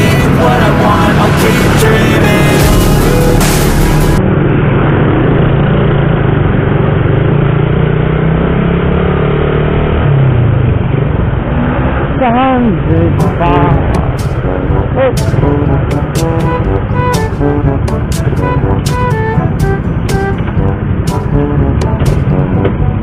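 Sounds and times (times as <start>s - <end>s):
music: 0.0s - 4.2s, 12.9s - 23.0s
motorcycle engine running: 0.0s - 11.4s, 12.9s - 23.0s
wind and road noise: 0.0s - 23.0s.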